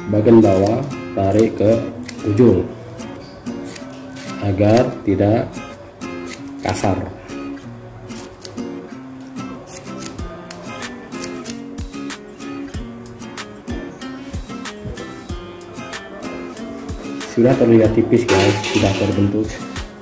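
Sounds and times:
plucked acoustic guitar music: 0:00.0 - 0:20.0.

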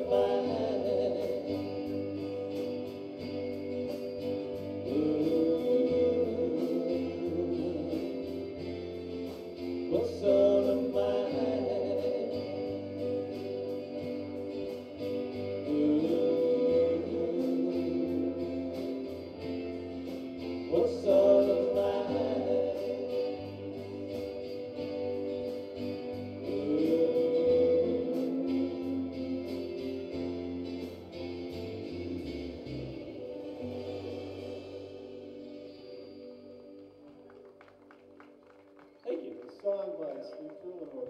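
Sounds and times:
person singing: 0:00.0 - 0:03.3, 0:04.5 - 0:36.8
live rock band playing: 0:00.0 - 0:36.7.

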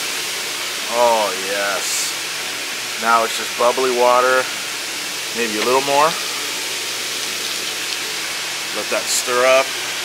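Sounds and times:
hot tub jets rushing water: 0:00.0 - 0:10.0.

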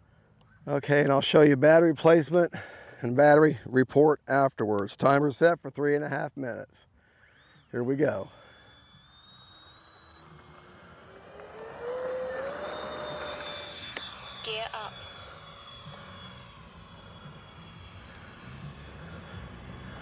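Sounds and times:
electric ducted fan whine: 0:06.4 - 0:20.0.

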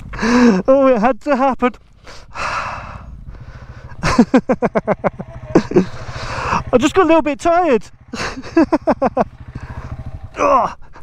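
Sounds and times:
man breathing hard: 0:00.0 - 0:00.7, 0:02.0 - 0:04.0, 0:05.8 - 0:06.7, 0:09.5 - 0:10.2.

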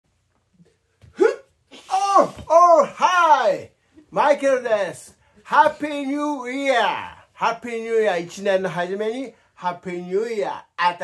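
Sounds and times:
man yelping: 0:01.1 - 0:04.6.

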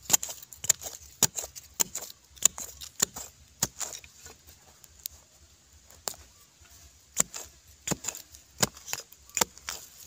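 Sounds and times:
digging tool striking stony soil: 0:00.0 - 0:04.5, 0:05.9 - 0:06.3, 0:07.1 - 0:10.0.

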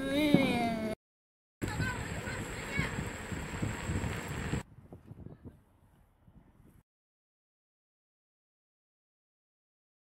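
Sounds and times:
wind rumble on microphone: 0:01.6 - 0:06.8.

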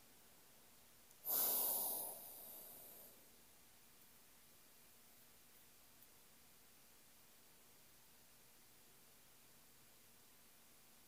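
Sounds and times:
sharp breath into microphone: 0:01.2 - 0:03.3.

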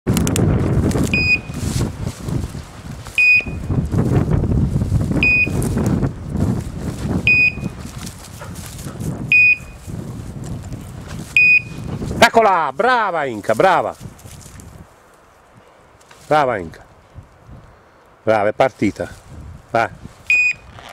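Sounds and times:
short high electronic beeps: 0:01.2 - 0:01.6, 0:05.2 - 0:05.6.

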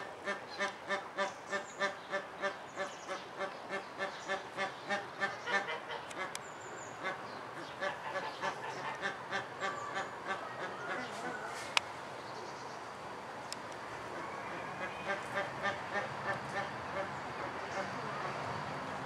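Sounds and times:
waterfowl honking: 0:07.0 - 0:11.4, 0:14.1 - 0:17.1.

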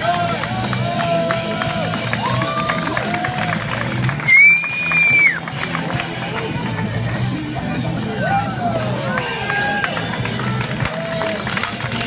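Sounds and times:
dance music through loudspeaker: 0:00.0 - 0:12.0.

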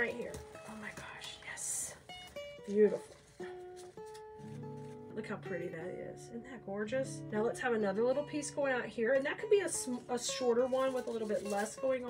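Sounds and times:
soft plucked-string music: 0:00.0 - 0:12.0.

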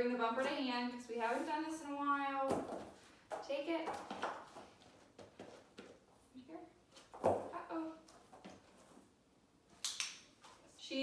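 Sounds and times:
dog's feet tapping on floor: 0:02.4 - 0:06.0.

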